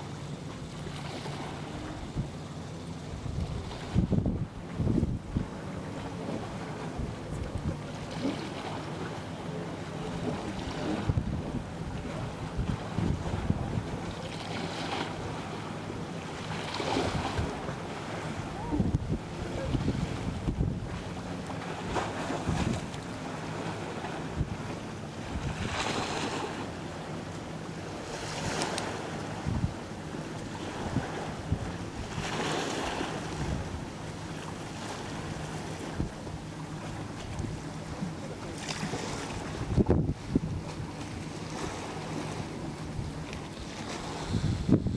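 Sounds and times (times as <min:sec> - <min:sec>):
low boat engine hum: 0:00.0 - 0:44.9
small ocean waves washing: 0:00.0 - 0:44.9
wind buffeting microphone: 0:03.0 - 0:09.2, 0:09.9 - 0:16.0, 0:16.6 - 0:26.7, 0:27.9 - 0:38.2, 0:38.8 - 0:44.9.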